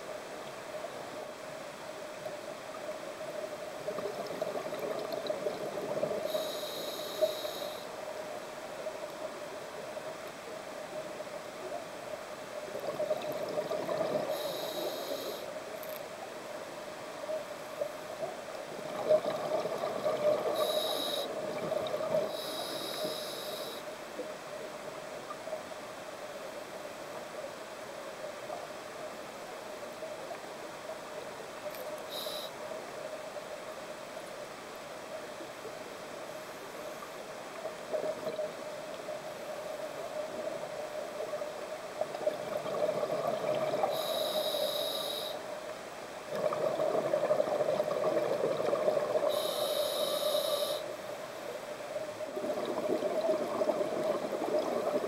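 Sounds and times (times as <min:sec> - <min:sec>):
diver breathing through regulator: 0:06.3 - 0:07.9, 0:20.6 - 0:21.4, 0:22.2 - 0:23.8, 0:43.8 - 0:45.4, 0:49.3 - 0:50.9.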